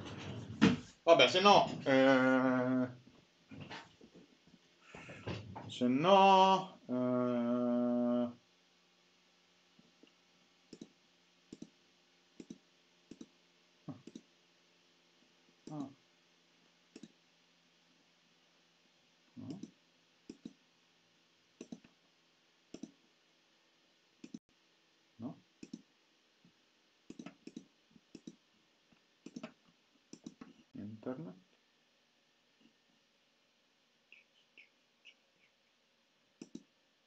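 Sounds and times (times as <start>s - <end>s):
faint hum: 0.0s - 37.0s
keyboard and mouse clicks: 10.7s - 10.9s, 11.5s - 11.8s, 12.4s - 13.3s, 13.9s - 14.3s, 17.0s - 17.2s, 19.4s - 20.6s, 21.6s - 21.9s, 22.7s - 23.0s, 25.6s - 25.8s, 27.1s - 28.4s, 29.2s - 30.6s, 36.4s - 36.7s.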